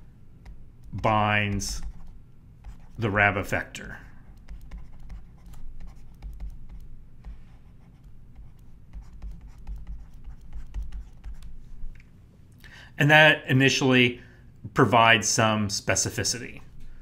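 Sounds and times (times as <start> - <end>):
stylus scratching on tablet: 0.4 - 11.6.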